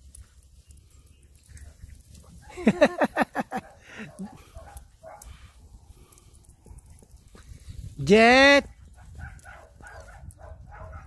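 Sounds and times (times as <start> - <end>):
soft dog noises: 0.0 - 2.8, 3.4 - 8.0, 8.6 - 11.0
dogs scuffling on grass: 0.0 - 11.0.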